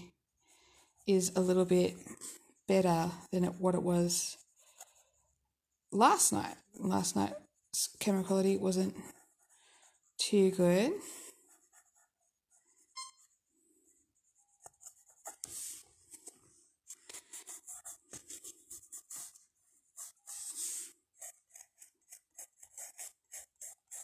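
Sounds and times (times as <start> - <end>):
pencil scratching on paper: 0.1 - 16.3, 16.9 - 24.0.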